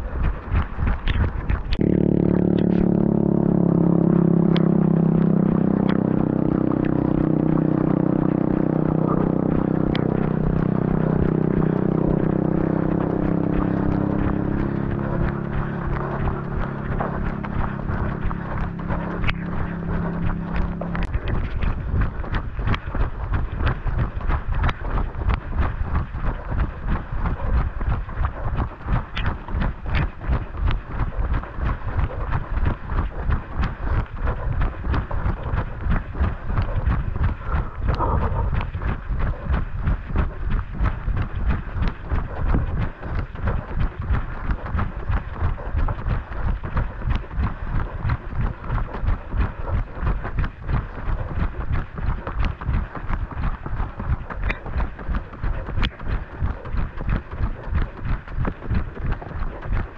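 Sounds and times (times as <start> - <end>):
running footfalls on pavement: 0.0 - 3.1, 3.8 - 59.9
steady low drone: 0.0 - 59.9.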